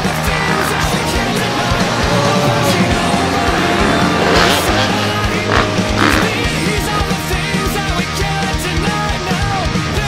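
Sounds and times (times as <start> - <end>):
rock music: 0.0 - 10.0.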